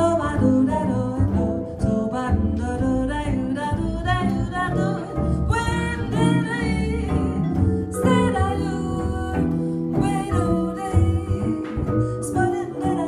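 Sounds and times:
electric jazz guitar: 0:00.0 - 0:13.0
walking double bass: 0:00.0 - 0:13.0.

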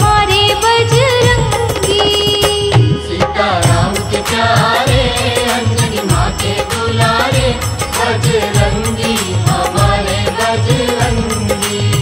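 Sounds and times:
steady percussion beat: 0:00.0 - 0:12.0.

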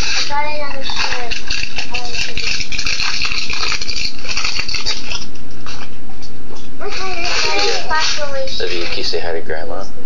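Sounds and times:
wrapping paper crinkling and tearing: 0:00.0 - 0:05.3.

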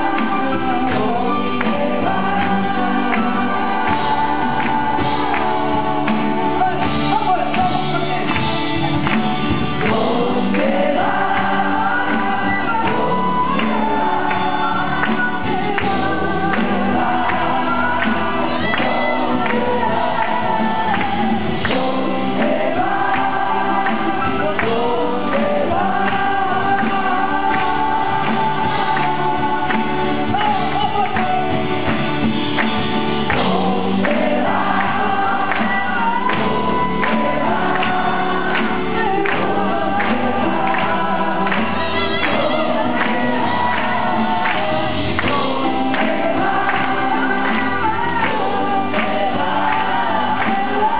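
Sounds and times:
drums: 0:00.0 - 0:50.9
voices singing together: 0:00.0 - 0:50.9.

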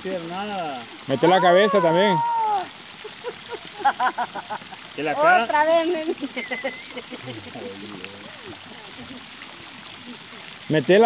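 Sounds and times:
running water hiss: 0:00.0 - 0:11.0
people laughing: 0:03.0 - 0:04.9, 0:05.9 - 0:09.4
drawn-out vocal call: 0:06.2 - 0:10.7.

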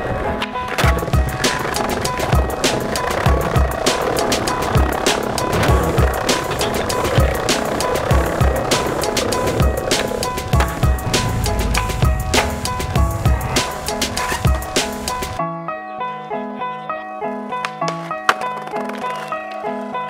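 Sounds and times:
skateboard wheels rolling on pavement: 0:00.0 - 0:15.4, 0:16.9 - 0:20.0
hip-hop beat: 0:01.1 - 0:15.4.

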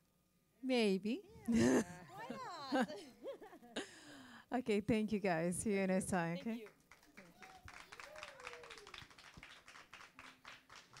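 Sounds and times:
faint audience clapping: 0:06.4 - 0:11.0.

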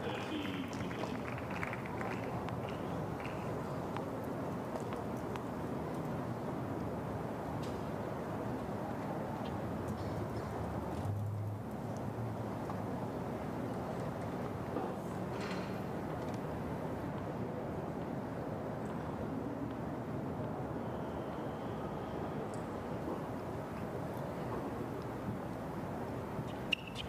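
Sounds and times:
crowd murmur: 0:00.0 - 0:04.1.

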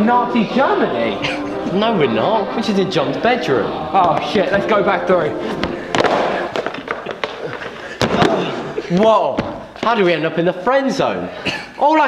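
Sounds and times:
sharp crack: 0:05.6 - 0:09.1.

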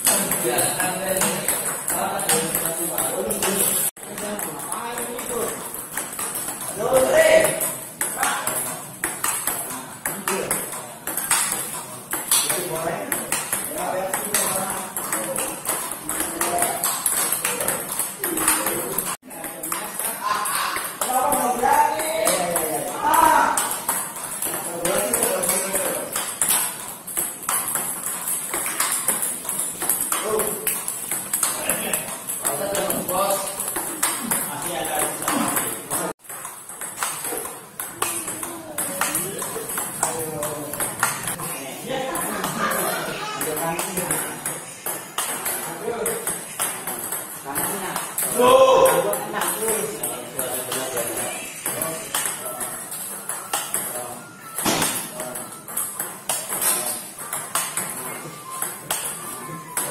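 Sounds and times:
table tennis balls ticking: 0:00.0 - 0:59.9.

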